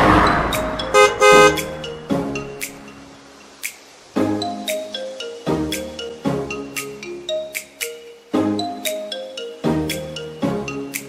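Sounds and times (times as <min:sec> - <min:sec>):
passing vehicle rush: 0:00.0 - 0:02.6
cartoon van horn tooting: 0:01.0 - 0:01.8.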